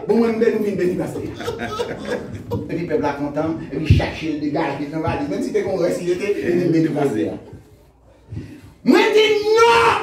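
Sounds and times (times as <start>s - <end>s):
man talking: 0.0s - 7.6s
man chuckling: 1.1s - 2.9s.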